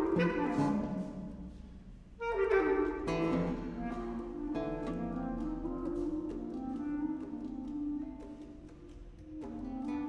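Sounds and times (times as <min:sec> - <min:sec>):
clarinet improvising: 0:00.0 - 0:10.0.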